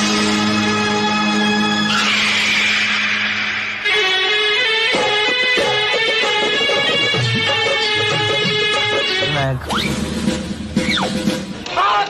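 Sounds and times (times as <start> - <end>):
song playing: 3.8 - 11.6.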